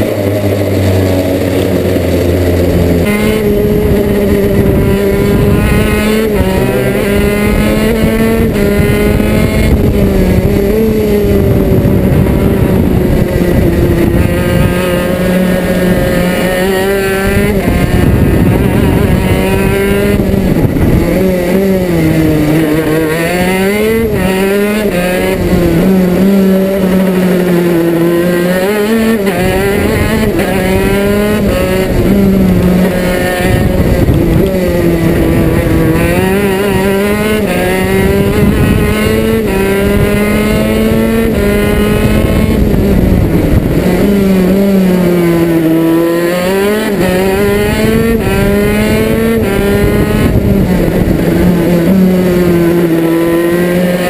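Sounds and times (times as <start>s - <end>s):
kart engine revving: 0.0s - 54.0s.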